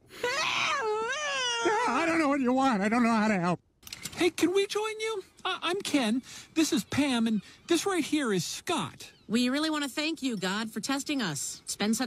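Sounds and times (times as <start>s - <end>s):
woman's high-pitched cartoon scream: 0.2s - 2.0s.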